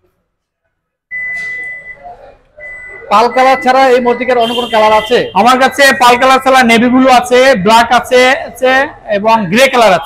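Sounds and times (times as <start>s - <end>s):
high warning beep: 1.1s - 6.6s.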